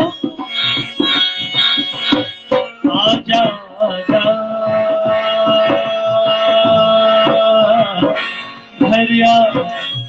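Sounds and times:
electronic keyboard sustained notes: 0:00.0 - 0:10.0
hand drum steady beat: 0:04.1 - 0:10.0.

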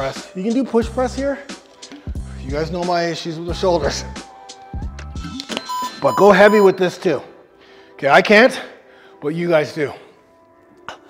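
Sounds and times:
background music: 0:00.0 - 0:11.0
short electronic timer beep: 0:05.6 - 0:06.8.

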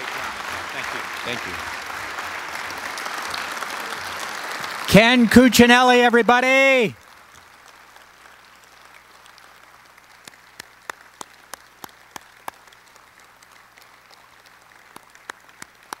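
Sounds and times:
audience applauding: 0:00.0 - 0:16.0.

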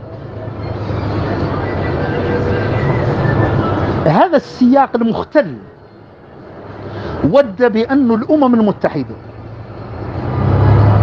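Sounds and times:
engine low rumble: 0:05.6 - 0:11.0.

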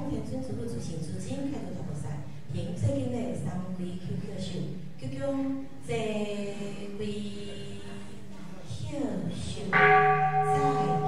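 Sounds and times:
temple bell ringing: 0:09.7 - 0:11.0.

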